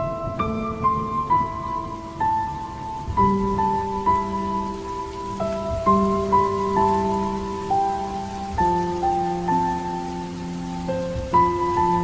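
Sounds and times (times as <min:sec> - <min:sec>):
slow background music: 0:00.0 - 0:12.0
steady hiss: 0:00.0 - 0:12.0.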